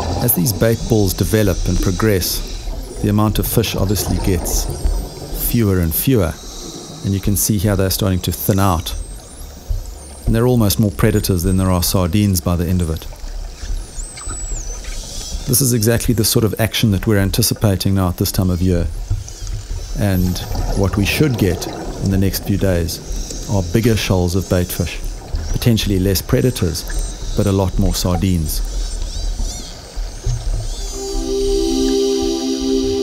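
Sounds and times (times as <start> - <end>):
low rumble: 0.0 - 11.6, 20.0 - 28.8
underwater water rush: 0.0 - 33.0
faint high whistle: 30.6 - 33.0
music with held notes: 30.8 - 33.0.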